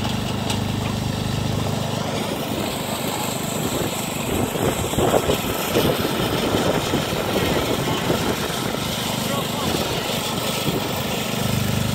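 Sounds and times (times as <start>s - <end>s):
snowblower throwing snow: 0.0s - 11.9s
tractor engine running under load: 0.0s - 11.9s.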